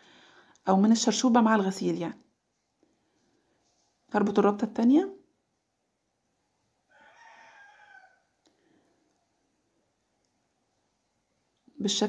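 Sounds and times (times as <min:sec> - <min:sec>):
faint distant animal call: 0:06.8 - 0:09.1.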